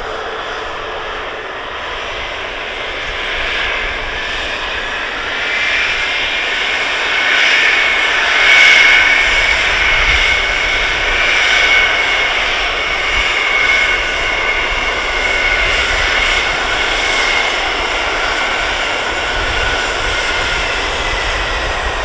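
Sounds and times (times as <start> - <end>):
high jet whine: 0.0 - 22.0
jet engines running: 0.0 - 22.0.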